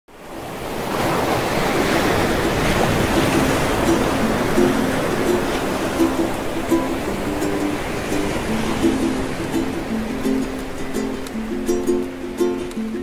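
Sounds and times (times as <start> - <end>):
ocean surf washing: 0.1 - 13.0
plucked ukulele notes: 2.2 - 13.0.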